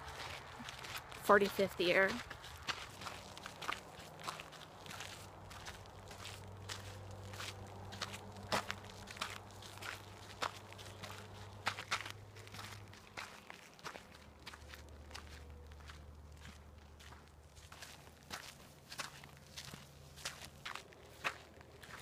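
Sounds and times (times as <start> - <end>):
footsteps on dirt trail: 0.0 - 22.0.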